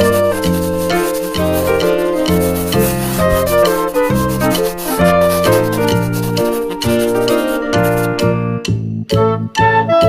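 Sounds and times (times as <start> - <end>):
scratchy rubbing noise: 0.0 - 8.2.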